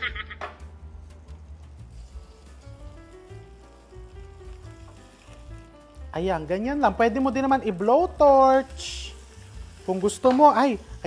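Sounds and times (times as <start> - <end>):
quiet background music: 0.0 - 11.0
meat sizzling on grill pan: 1.8 - 11.0.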